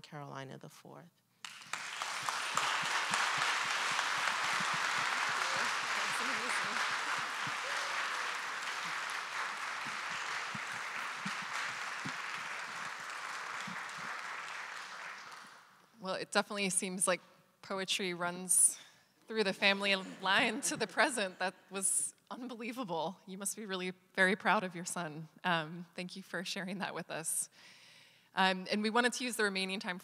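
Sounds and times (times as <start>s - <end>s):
audience applauding: 1.4s - 15.8s.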